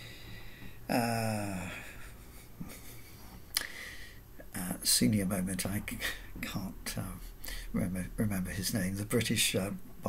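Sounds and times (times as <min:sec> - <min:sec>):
man speaking: 0:04.5 - 0:07.2, 0:07.8 - 0:09.8.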